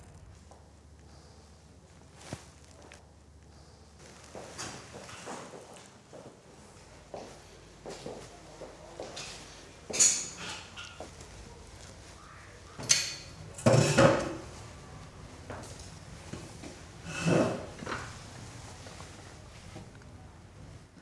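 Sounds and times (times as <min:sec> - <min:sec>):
wooden chair scraping on floor: 0:17.0 - 0:18.1.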